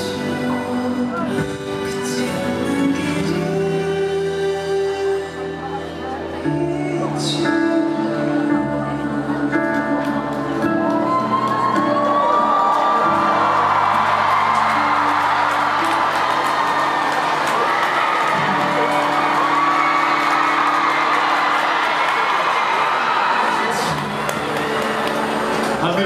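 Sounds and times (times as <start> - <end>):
ballad chords: 0.0 - 21.9
crowd cheering and screaming: 10.2 - 26.0.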